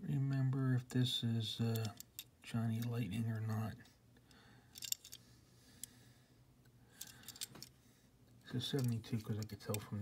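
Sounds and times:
toy car clicks and rattles: 4.8s - 5.2s, 7.0s - 7.7s.

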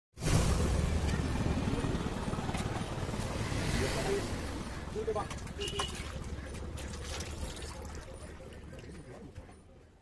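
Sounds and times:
engine rumbling: 0.2s - 10.0s.

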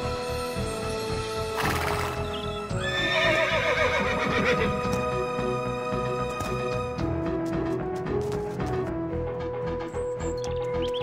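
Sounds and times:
background music: 0.0s - 11.0s
horse whinnying: 1.6s - 4.8s.

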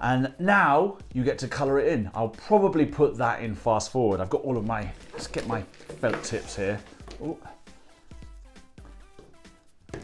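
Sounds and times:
quiet background melody: 0.0s - 10.0s.

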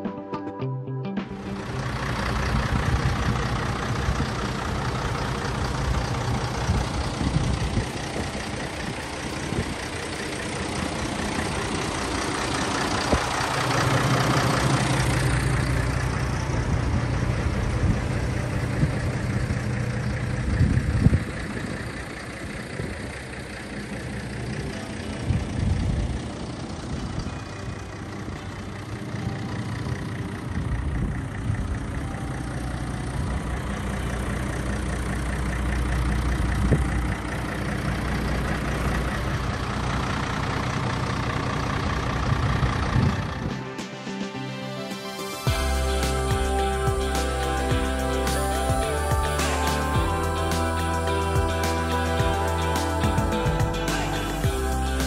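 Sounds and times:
diesel truck engine idling: 1.4s - 44.0s, 45.4s - 55.0s.

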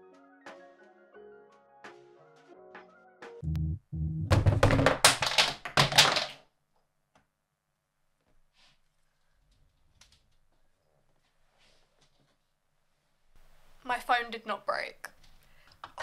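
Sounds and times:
objects clattering onto floor: 4.3s - 6.4s.

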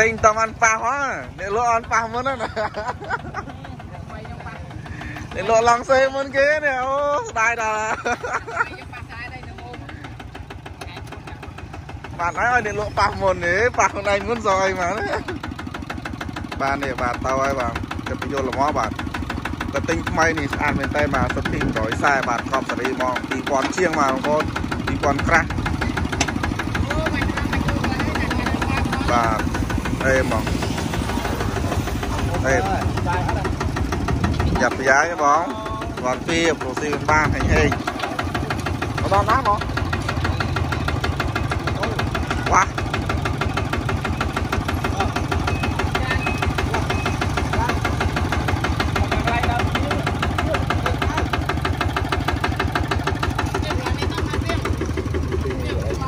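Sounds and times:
diesel engine idling: 0.0s - 56.0s.

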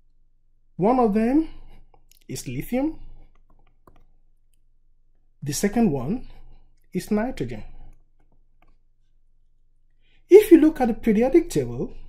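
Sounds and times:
stylus tapping on tablet: 3.3s - 4.1s.

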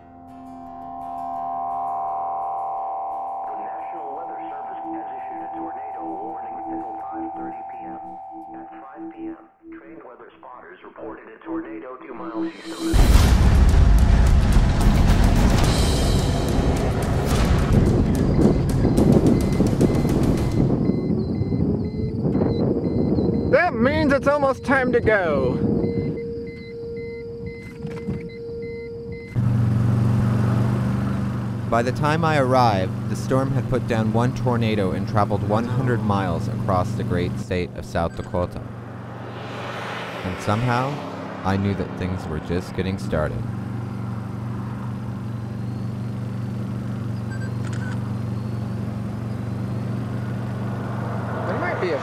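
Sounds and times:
car road and engine rumble: 12.7s - 52.0s
short repeated beeps: 18.1s - 29.4s, 47.2s - 48.6s.

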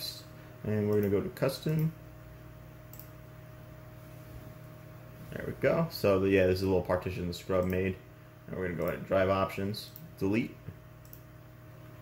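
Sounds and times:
computer humming with thin whine: 0.0s - 12.0s.

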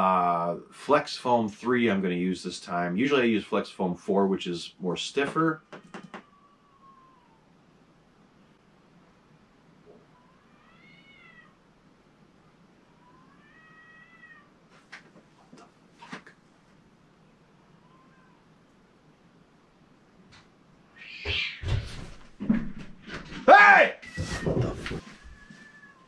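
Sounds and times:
cat meowing faintly: 5.7s - 7.6s, 9.9s - 11.6s, 12.9s - 14.6s, 17.6s - 18.5s, 24.0s - 26.0s.

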